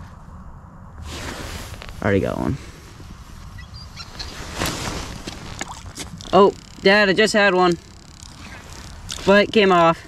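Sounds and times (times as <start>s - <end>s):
wind rumbling on microphone: 0.0s - 10.0s
clothing rustling swoosh: 1.0s - 2.1s, 4.1s - 5.6s.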